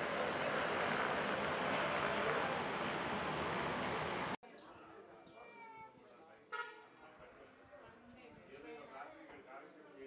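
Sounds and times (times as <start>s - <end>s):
faint voices outdoors: 0.0s - 10.0s.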